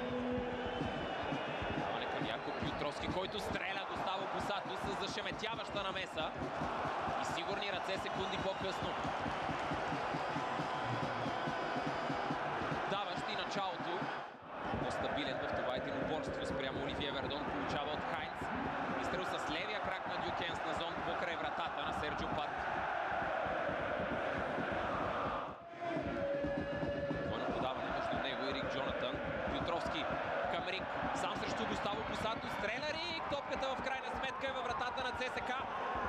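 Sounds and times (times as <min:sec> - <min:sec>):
stadium crowd chanting and singing: 0:00.0 - 0:32.8.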